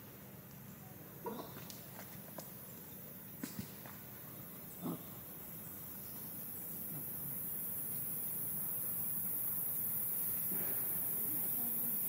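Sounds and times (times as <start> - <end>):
monkey grunt: 1.2 - 1.7, 4.7 - 5.5.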